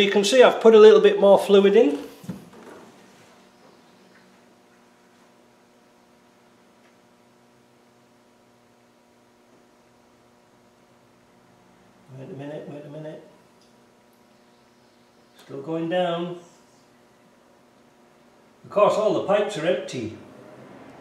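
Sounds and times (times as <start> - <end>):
faint electrical hum: 0.0 - 21.0.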